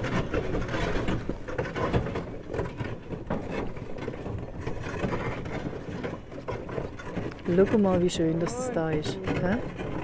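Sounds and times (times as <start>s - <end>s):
sleigh clicking and knocking: 0.0s - 10.0s.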